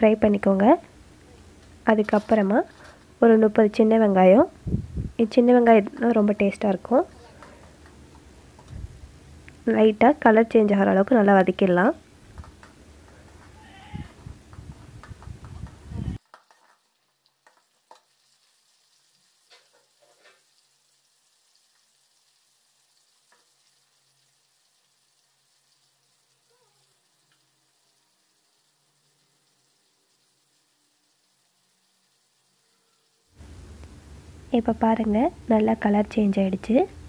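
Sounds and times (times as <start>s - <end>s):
shallots sizzling in oil: 0.0s - 37.0s.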